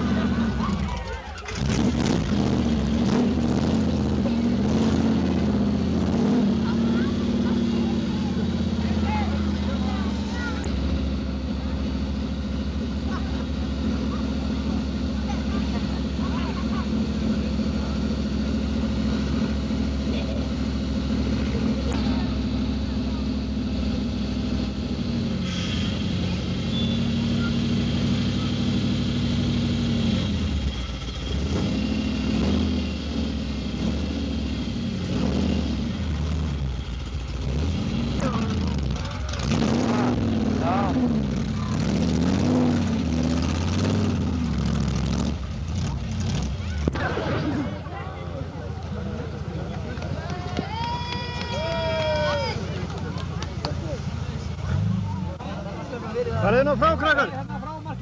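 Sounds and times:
jeep engine revving: 0.0s - 58.0s.

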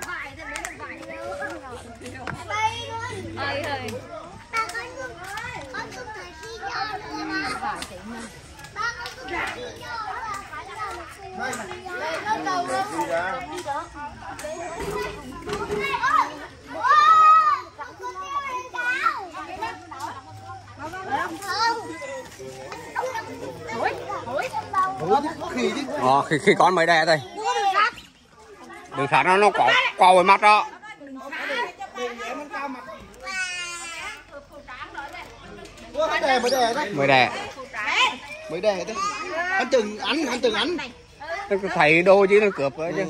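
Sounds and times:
adults talking: 0.0s - 43.0s
young children chattering: 0.0s - 43.0s.

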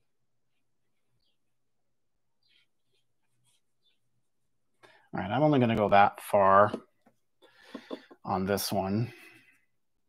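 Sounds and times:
paintbrush strokes on paper: 0.4s - 4.8s.

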